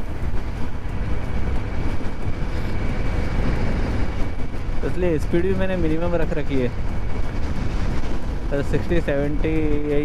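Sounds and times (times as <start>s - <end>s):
scooter engine and tyres: 0.0s - 10.0s
strong wind buffeting microphone: 0.0s - 10.0s.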